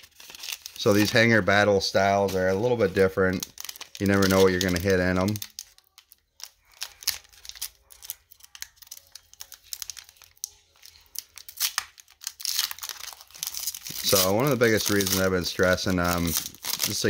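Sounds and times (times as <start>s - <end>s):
foil pack tearing and crinkling: 0.0s - 17.0s.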